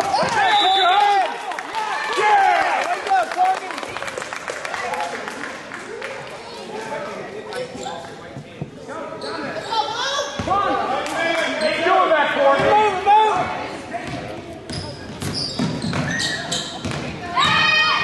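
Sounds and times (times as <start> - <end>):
voices calling out in gym: 0.0 - 3.9, 4.8 - 18.0.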